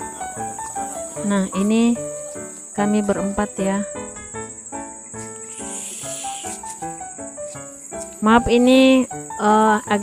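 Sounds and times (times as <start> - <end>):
high insect trill: 0.0 - 10.0.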